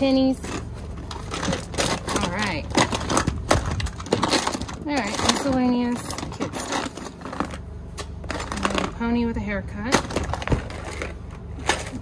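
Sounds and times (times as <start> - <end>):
plastic toys clattering: 0.0 - 12.0.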